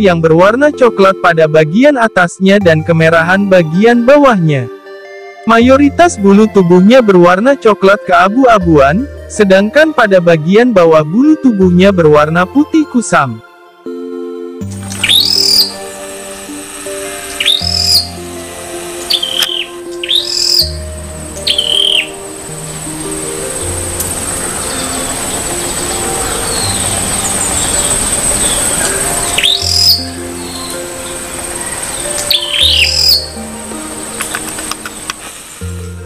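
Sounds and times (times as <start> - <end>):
songbird sharp downward calls: 14.7 - 35.1.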